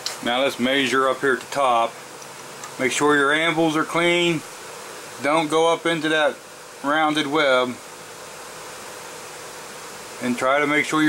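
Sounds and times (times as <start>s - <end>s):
faint steady hum: 0.0s - 11.0s
steady background hiss: 0.0s - 11.0s.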